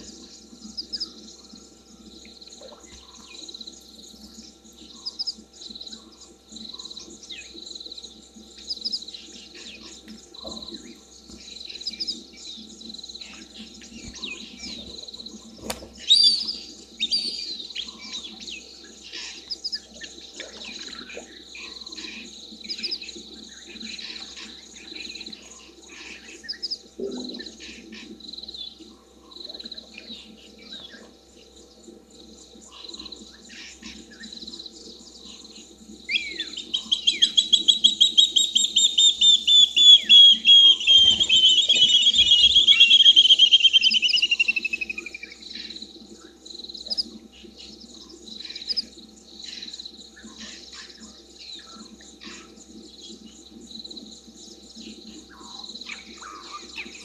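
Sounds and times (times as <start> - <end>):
steady high insect note: 31.6 - 50.2
bird call of rapid notes: 36.2 - 45.0.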